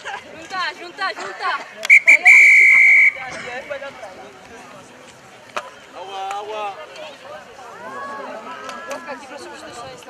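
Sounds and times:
people talking and calling: 0:00.0 - 0:10.0.

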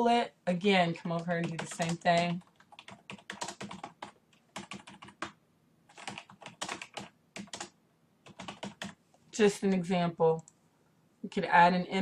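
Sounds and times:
typing on a keyboard: 0:01.1 - 0:09.0.

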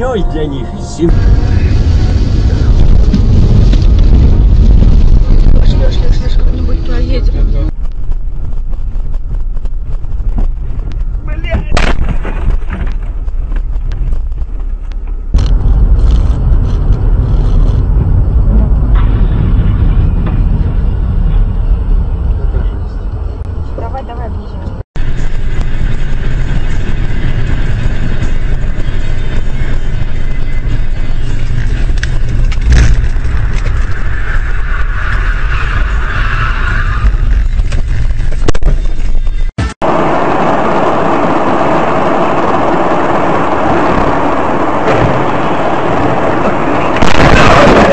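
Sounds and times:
vehicle engine and road rumble: 0:00.0 - 0:47.9.

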